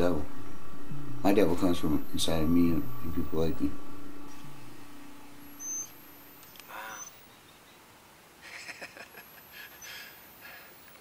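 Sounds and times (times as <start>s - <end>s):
faint outdoor ambience: 0.0s - 11.0s
short high bird chirps: 5.6s - 7.8s.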